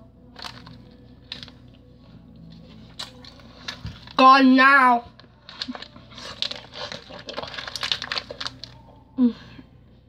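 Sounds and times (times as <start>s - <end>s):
person chewing candy: 5.5s - 8.8s.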